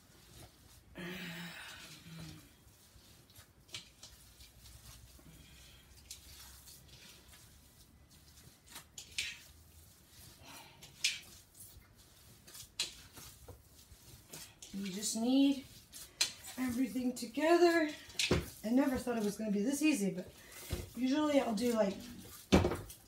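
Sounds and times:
hands squishing ground meat: 0.0s - 1.0s, 1.8s - 23.0s.

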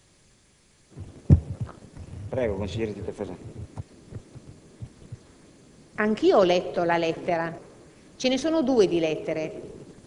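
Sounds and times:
low thump on microphone: 1.0s - 2.4s
microphone handling knocks: 1.0s - 2.5s, 3.3s - 5.3s.

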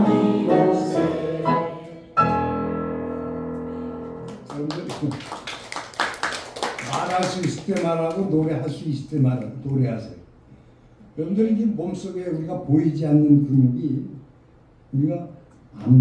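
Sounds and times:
group singing: 0.0s - 2.2s
grand piano: 0.0s - 5.5s.

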